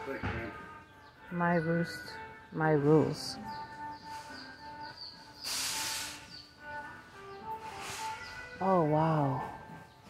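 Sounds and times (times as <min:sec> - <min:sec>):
faint background music: 0:00.0 - 0:10.0
short hiss: 0:05.4 - 0:06.3, 0:07.8 - 0:08.2.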